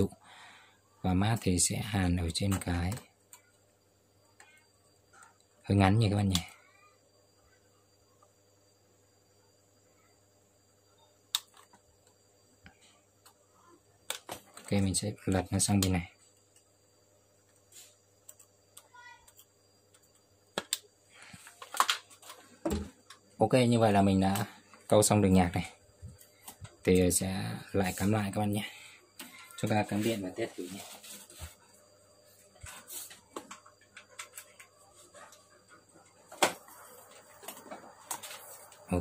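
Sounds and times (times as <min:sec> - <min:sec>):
plugs and wires clicking: 0:11.3 - 0:12.2
clicks and rustles of wires: 0:17.4 - 0:23.3, 0:32.4 - 0:38.9.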